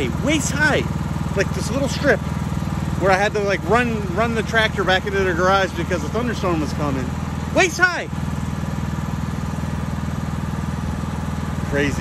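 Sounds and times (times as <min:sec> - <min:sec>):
lawn mower engine running: 0:00.0 - 0:12.0.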